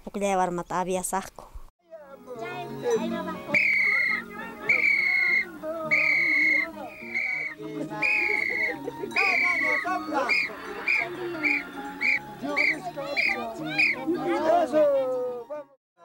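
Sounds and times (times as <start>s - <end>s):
lower musical accompaniment: 1.8s - 15.7s
high-pitched flute melody: 2.8s - 14.9s.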